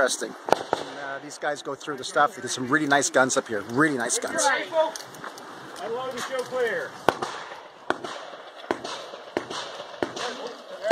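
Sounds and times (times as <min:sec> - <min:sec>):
gunshots: 0:00.4 - 0:01.2, 0:07.0 - 0:10.9.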